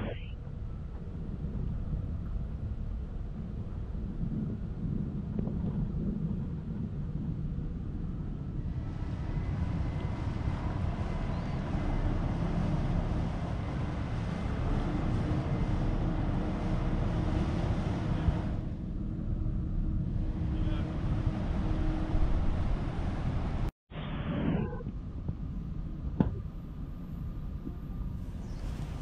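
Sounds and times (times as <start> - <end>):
waterfront background noise: 0.0 - 29.0
wind rumbling on microphone: 0.0 - 29.0.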